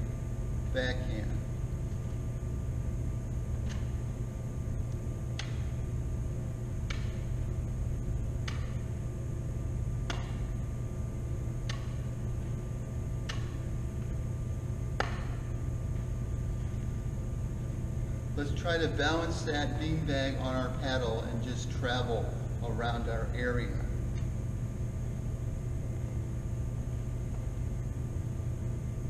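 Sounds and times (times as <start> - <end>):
steady low hum: 0.0 - 29.0.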